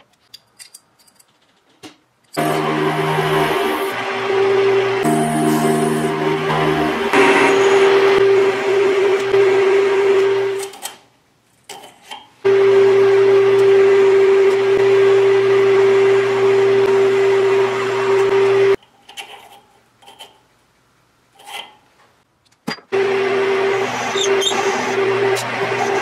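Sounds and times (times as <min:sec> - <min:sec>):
metal lathe whining: 0:02.4 - 0:10.6, 0:23.0 - 0:26.0.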